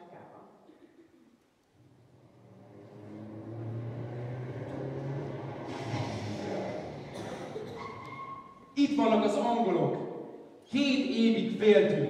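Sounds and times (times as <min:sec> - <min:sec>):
low engine drone: 0:01.8 - 0:08.0.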